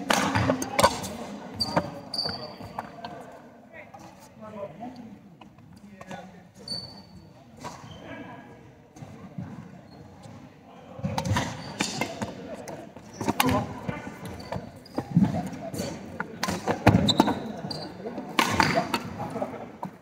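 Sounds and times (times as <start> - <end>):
court shoes squeaking: 0.0 - 3.4, 5.4 - 20.0.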